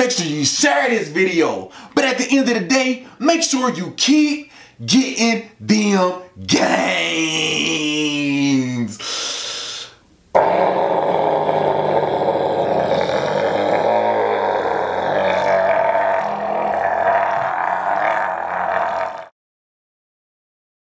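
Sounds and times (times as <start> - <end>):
man straining roar: 6.4 - 8.2, 10.4 - 19.3.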